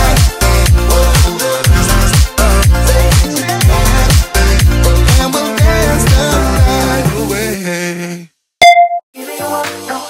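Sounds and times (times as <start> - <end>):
music track with steady beat: 0.0 - 7.6
workout music: 0.0 - 7.6
short electronic beep: 8.6 - 9.0.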